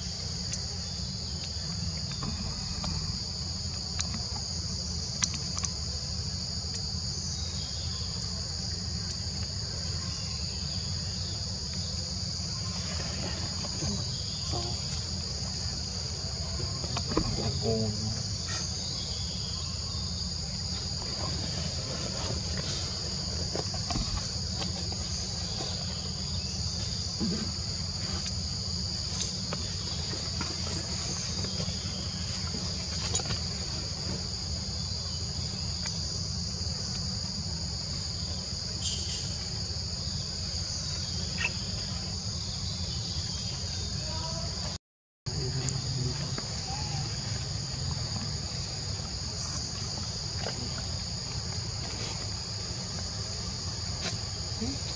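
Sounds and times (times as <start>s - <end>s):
forest insects droning: 0.0s - 54.9s.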